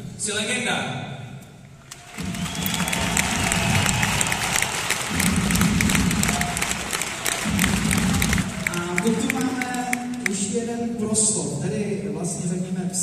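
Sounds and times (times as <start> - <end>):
crowd applauding and cheering: 1.9 - 10.6.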